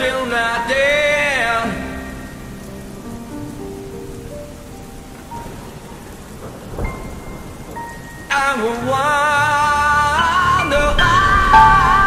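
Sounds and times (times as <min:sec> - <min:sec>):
low rumble of thunder: 0:00.0 - 0:09.6, 0:10.7 - 0:12.0
steady rain: 0:00.0 - 0:12.0.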